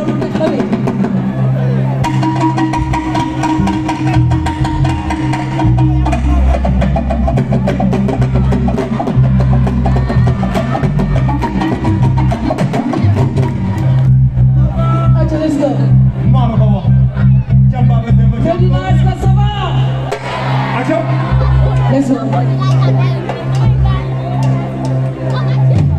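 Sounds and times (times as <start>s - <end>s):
bass and electric guitars: 0.0s - 25.9s
hand drums and kit drumming: 2.0s - 14.0s.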